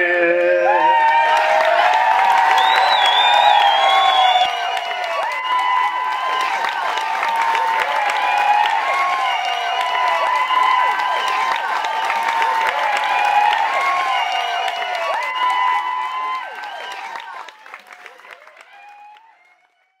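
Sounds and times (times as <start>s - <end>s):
shouts and whoops: 0.0s - 19.3s
crowd applauding and cheering: 0.0s - 20.0s.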